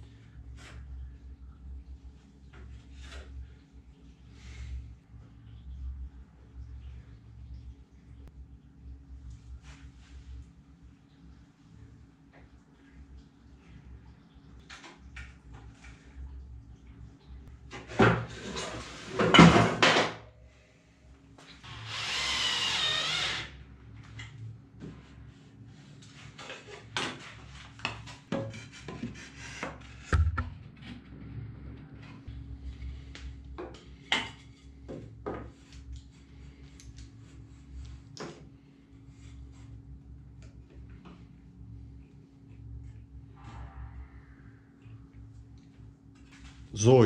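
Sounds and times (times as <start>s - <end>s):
wooden battens knocking on frame: 30.1s - 30.6s.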